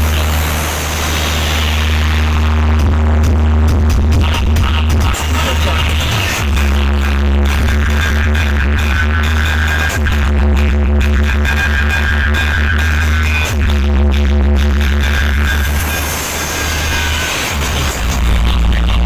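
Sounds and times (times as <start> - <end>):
electronic dance music: 0.0 - 19.0
heavy sustained bass: 0.0 - 19.0.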